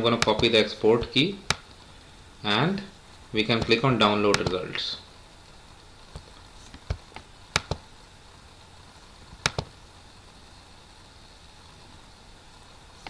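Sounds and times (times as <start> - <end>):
faint steady hiss: 0.0 - 13.0
computer mouse clicks: 6.1 - 7.8, 9.4 - 9.7.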